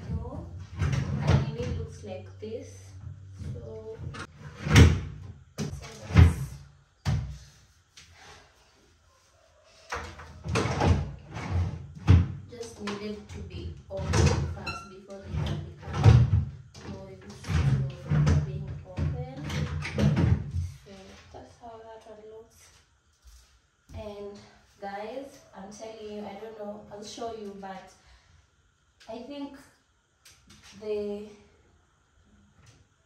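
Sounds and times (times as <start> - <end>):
desk drawers opening and closing: 0.0 - 1.8, 3.4 - 6.6, 9.9 - 20.6.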